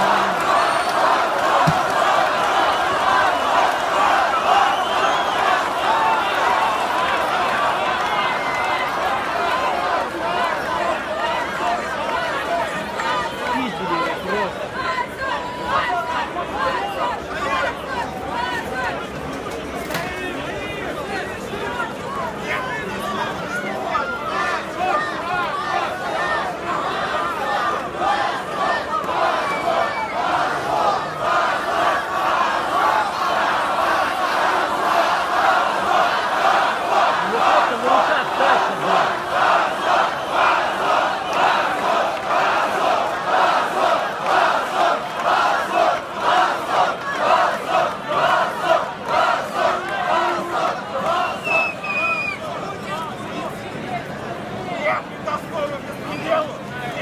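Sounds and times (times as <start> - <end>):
crowd chanting: 0.0 - 19.2, 20.2 - 52.7
crowd of protesters shouting: 0.0 - 57.0.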